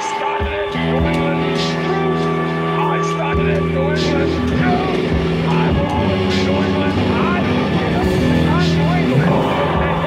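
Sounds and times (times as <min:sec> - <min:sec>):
drums: 0:00.0 - 0:10.0
guitar and bass chords: 0:00.0 - 0:10.0
shouted vocals: 0:00.0 - 0:10.0.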